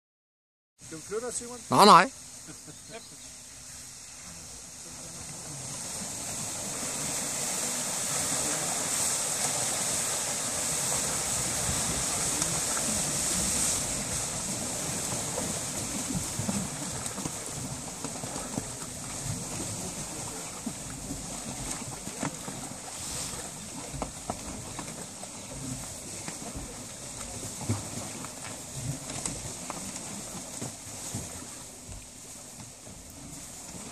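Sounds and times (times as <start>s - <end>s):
water splashing: 1.0s - 33.9s
water gushing from hose: 3.8s - 31.8s.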